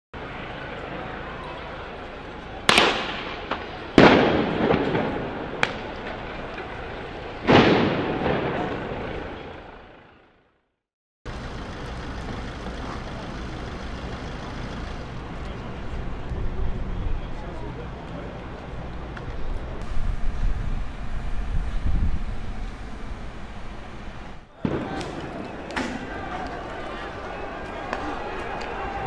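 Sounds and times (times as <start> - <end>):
outdoor background noise: 0.2 - 10.7, 11.3 - 29.0
loud detonations: 2.7 - 6.1, 7.4 - 9.7, 19.8 - 26.0.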